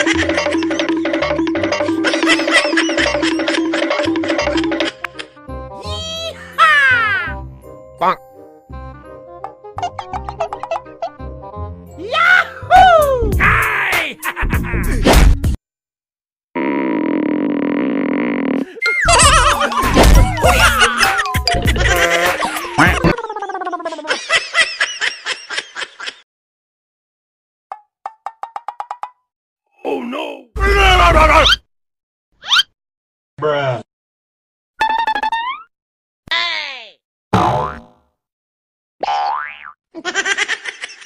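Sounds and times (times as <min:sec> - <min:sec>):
canned laughter: 0:00.0 - 0:05.3, 0:14.1 - 0:15.0, 0:18.6 - 0:26.2, 0:40.0 - 0:41.0
springy boing: 0:37.3 - 0:38.0.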